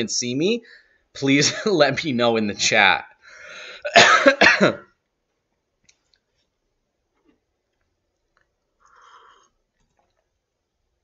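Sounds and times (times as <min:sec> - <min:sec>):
man coughing: 0:03.7 - 0:04.9.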